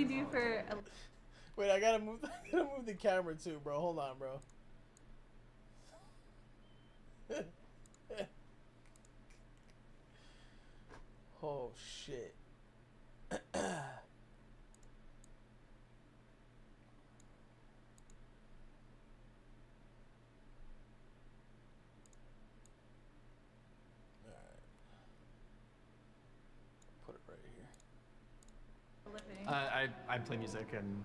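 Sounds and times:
man clearing his throat: 7.3 - 8.3, 13.3 - 14.1.

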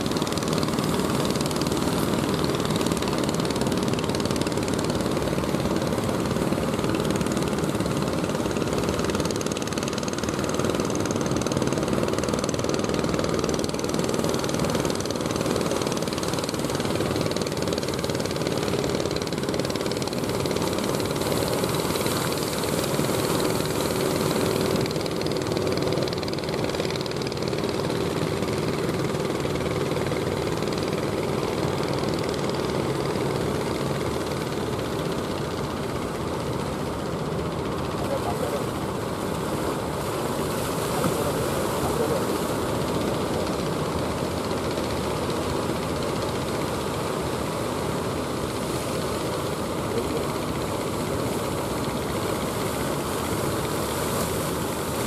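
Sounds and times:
boat engines knocking: 0.0 - 55.0
sea surf noise: 0.0 - 55.0.

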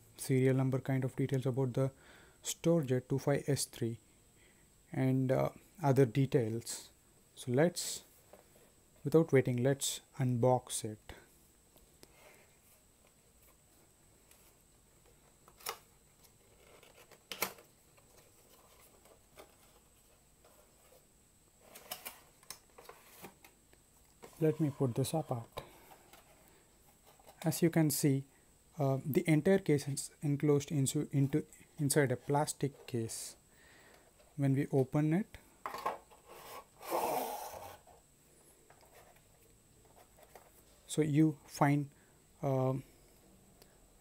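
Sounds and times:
cardboard and plastic rustling: 14.2 - 23.6.

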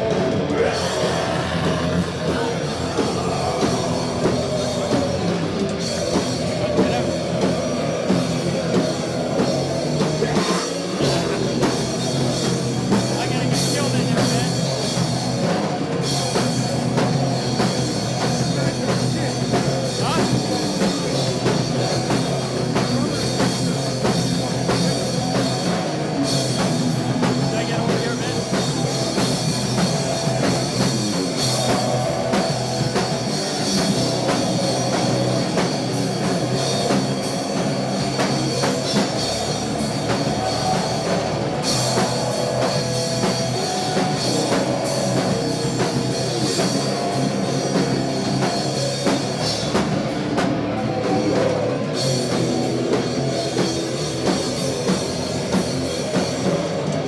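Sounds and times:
distorted electric guitars: 0.0 - 57.0
fast drum kit: 0.0 - 57.0.

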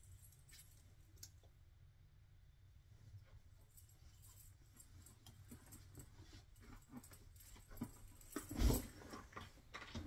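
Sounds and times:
leather chair rustles and knocks: 5.6 - 10.0.

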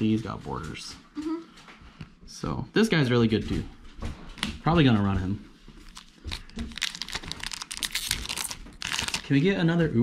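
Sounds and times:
foil pack crinkling: 5.8 - 9.6.

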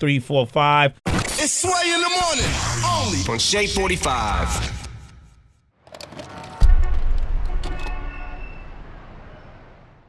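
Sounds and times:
deep boom: 6.6 - 9.2.

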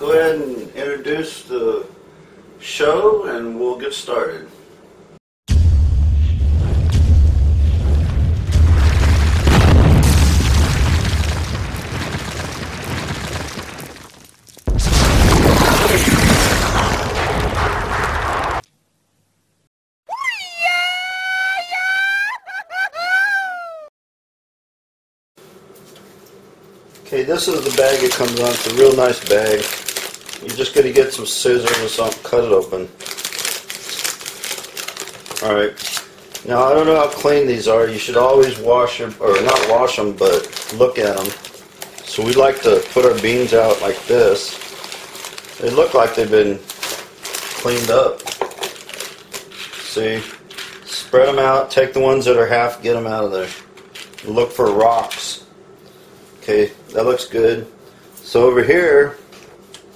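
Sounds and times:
deep rumbling boom: 5.5 - 14.1, 14.7 - 18.5
heavy crash: 5.5 - 18.6
crumbling rock and debris: 7.9 - 18.6, 27.6 - 30.7, 39.4 - 49.2
plastic bag crinkling: 10.6 - 16.0, 27.0 - 51.0, 53.4 - 55.1
dry beans rattling: 27.4 - 32.3, 33.0 - 38.6, 39.3 - 51.0.

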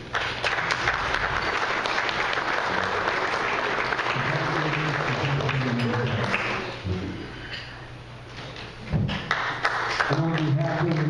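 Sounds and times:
audience applauding: 0.0 - 6.8, 9.1 - 11.0.

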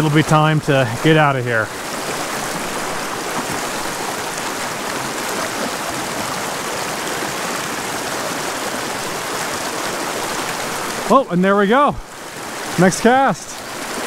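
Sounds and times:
creek rushing over stones: 0.0 - 14.0.

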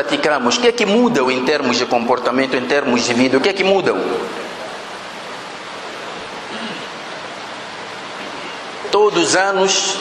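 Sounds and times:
steady hiss: 0.1 - 10.0.

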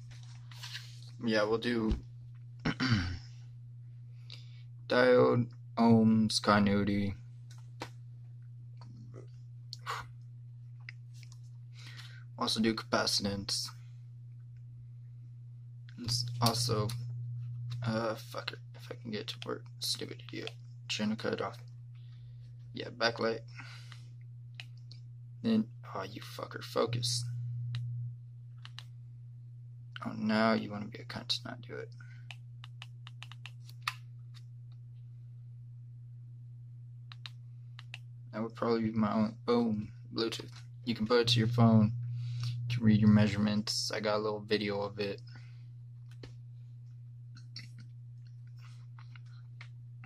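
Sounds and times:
steady low hum: 0.0 - 50.0.

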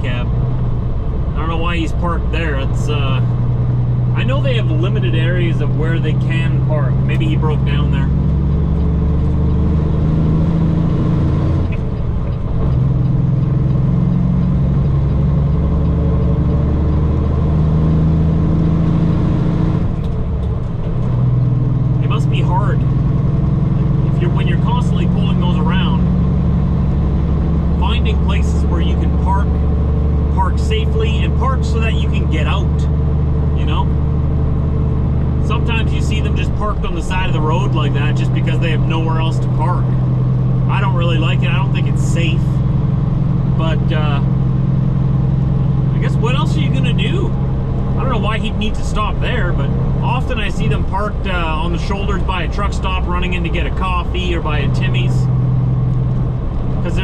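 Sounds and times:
diesel truck engine droning: 0.0 - 57.0.

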